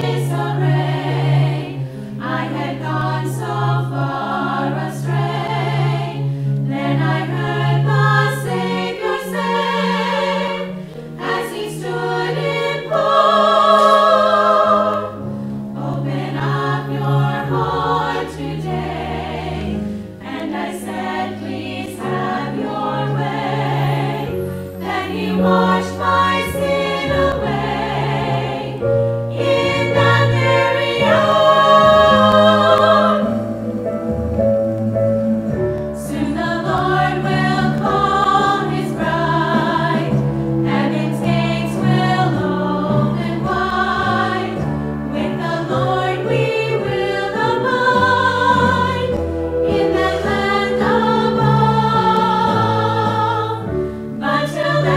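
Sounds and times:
women's choir singing a hymn: 0.0 - 33.8, 35.8 - 54.9.

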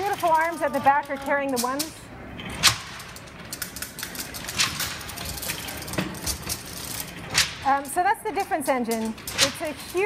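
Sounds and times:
gears and levers clicking: 0.0 - 10.0.

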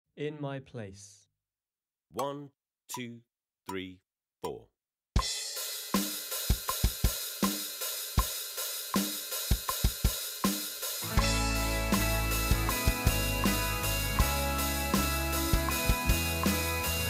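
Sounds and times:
electronic drum kit rock beat: 5.2 - 17.0
backing track with sustained instruments: 11.0 - 17.0.

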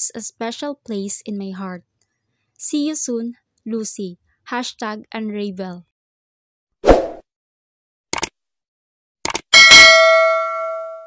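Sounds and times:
bell ding: 9.6 - 11.0.

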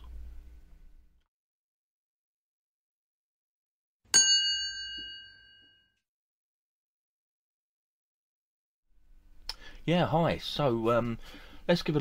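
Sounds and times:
bright bell chime: 4.1 - 5.9.

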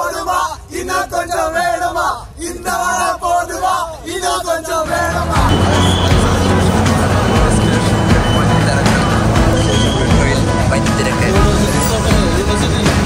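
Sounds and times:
background music: 4.7 - 13.0
crowd chatter: 4.9 - 13.0.

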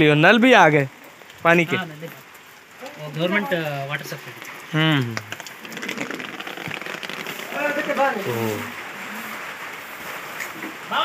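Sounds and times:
rain patter: 0.0 - 11.0
small drip ticks: 0.9 - 7.5.

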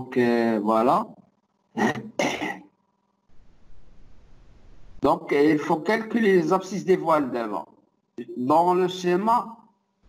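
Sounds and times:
person clearing throat: 1.8 - 2.7
faint steady hiss: 3.2 - 5.4.

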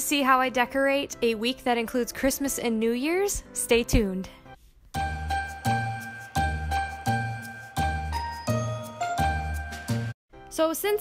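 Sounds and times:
bright bell-like chimes: 5.0 - 10.2.

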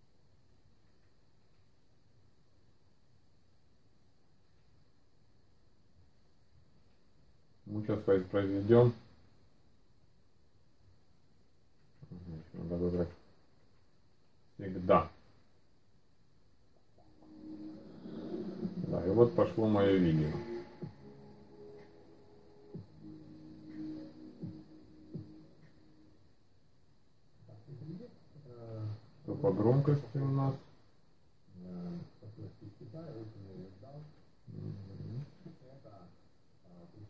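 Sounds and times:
steady low tone: 16.8 - 30.5
man's voice from tv speakers: 18.8 - 21.0, 29.2 - 30.7.

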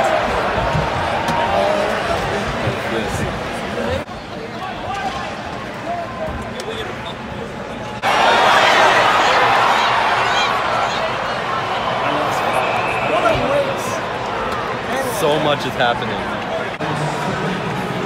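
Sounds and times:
crowd voices: 0.0 - 18.0.

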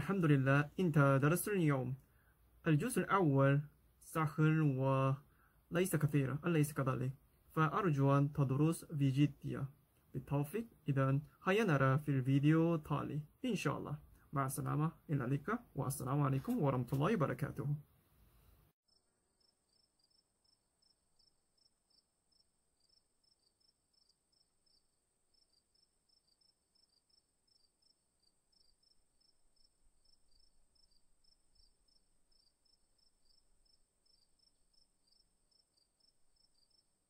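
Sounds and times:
faint high-pitched chirps: 18.4 - 37.0.

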